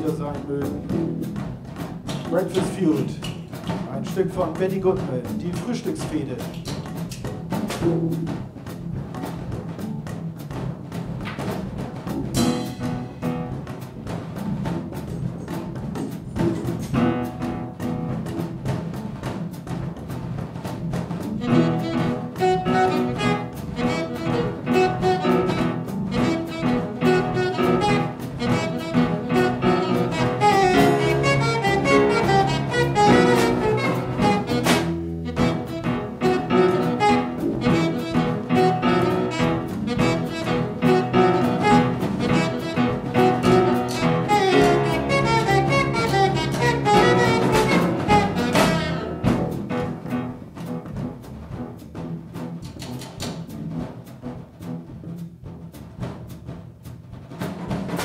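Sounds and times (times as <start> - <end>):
drums and cymbals: 0.0 - 58.0
plucked upright double bass: 0.0 - 58.0
saxophone melody: 21.4 - 50.4.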